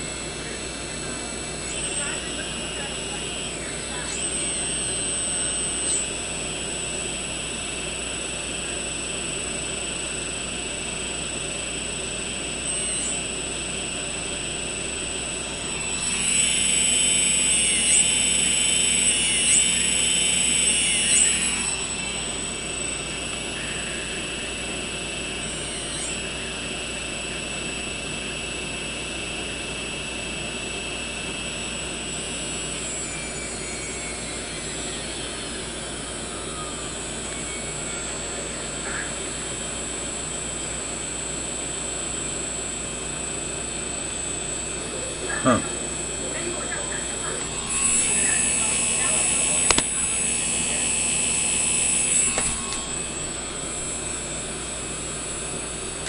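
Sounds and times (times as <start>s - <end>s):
quadcopter motors whining: 0.0s - 56.0s.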